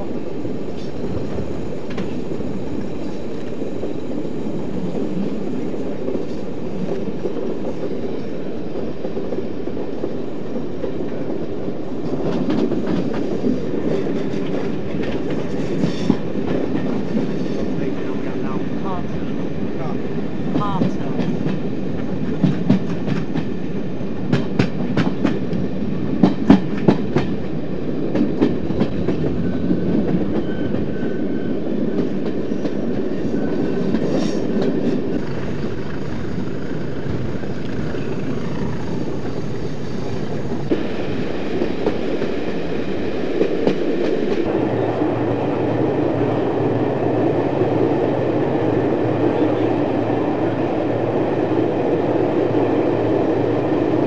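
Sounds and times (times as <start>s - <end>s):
train running rumble: 0.0s - 54.0s
train wheels clicking on rail joints: 0.6s - 4.0s, 4.6s - 19.5s, 20.4s - 44.5s.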